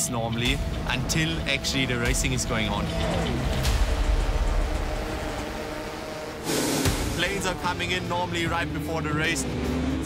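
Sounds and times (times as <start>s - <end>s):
dirt bike engines rumbling: 0.3s - 10.0s.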